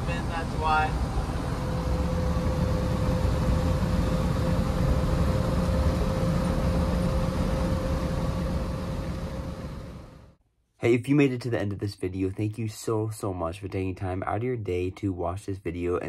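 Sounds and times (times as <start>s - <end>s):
car cabin road and engine rumble: 0.0s - 10.3s.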